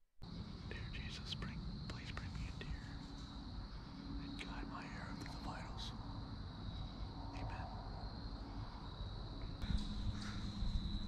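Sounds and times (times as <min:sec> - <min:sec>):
low background rumble: 0:00.2 - 0:11.0
man whispering: 0:00.6 - 0:03.2, 0:04.0 - 0:06.0, 0:07.3 - 0:08.0.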